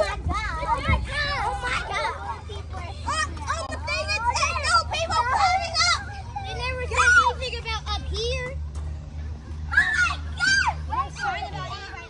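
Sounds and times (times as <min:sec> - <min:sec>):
children shouting: 0:00.0 - 0:08.6, 0:09.5 - 0:12.0.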